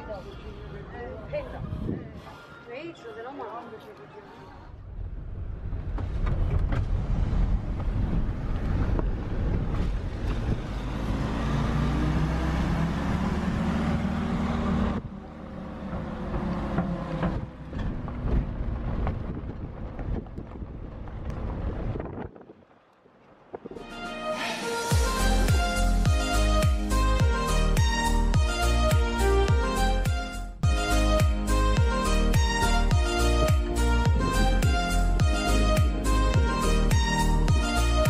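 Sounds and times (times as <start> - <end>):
vehicle engine and road noise: 0.0 - 38.0.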